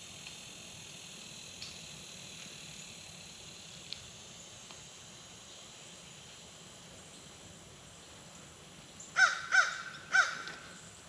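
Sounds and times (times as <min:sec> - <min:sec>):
bird giving harsh calls: 0:09.2 - 0:10.8.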